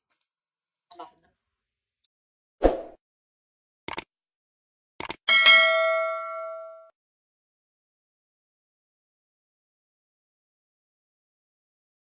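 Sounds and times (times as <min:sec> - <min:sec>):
bright bell ding: 0:05.3 - 0:06.9.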